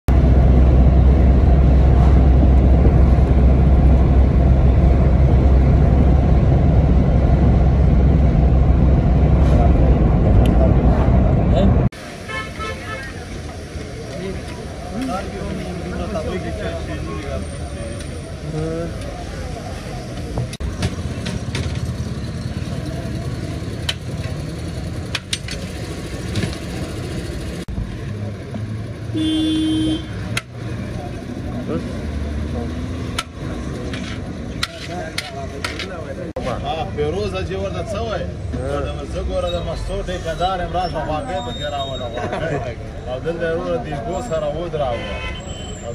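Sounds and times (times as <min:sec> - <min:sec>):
road rumble inside moving vehicle: 0:00.1 - 0:12.2, 0:13.0 - 0:44.8
car horn: 0:12.2 - 0:13.3, 0:29.1 - 0:30.2, 0:44.8 - 0:45.8.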